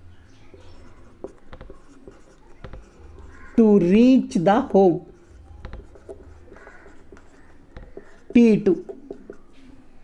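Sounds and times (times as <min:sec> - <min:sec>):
marker scratching on whiteboard: 0:00.2 - 0:09.7
marker tip ticking on board: 0:00.5 - 0:09.4.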